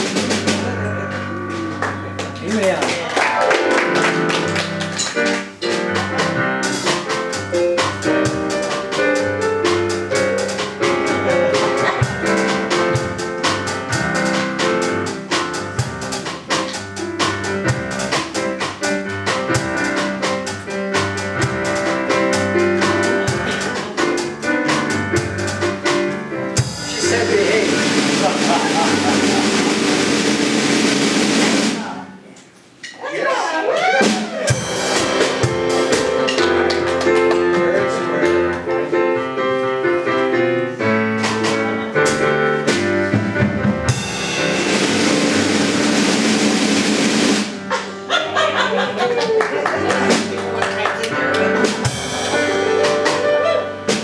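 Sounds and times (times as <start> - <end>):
held keyboard chords: 0.0 - 31.9, 34.5 - 54.0
drum kit steady beat: 0.0 - 32.1, 33.8 - 39.2, 40.8 - 48.9, 49.7 - 54.0
church band playing: 0.0 - 32.2, 33.7 - 54.0.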